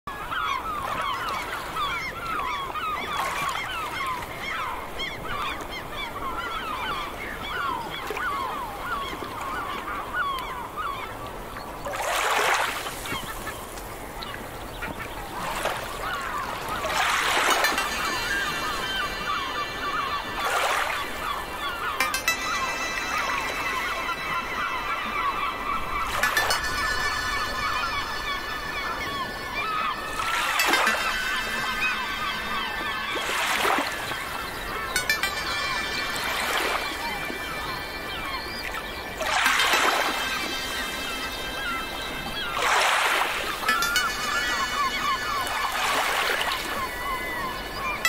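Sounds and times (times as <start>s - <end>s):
flock of birds calling: 0.1s - 48.0s
steady musical tones: 16.2s - 42.7s, 43.4s - 48.0s.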